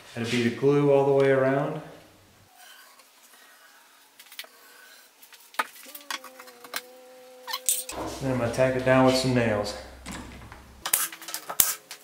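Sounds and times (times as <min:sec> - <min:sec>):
steady low hum: 0:07.9 - 0:10.9.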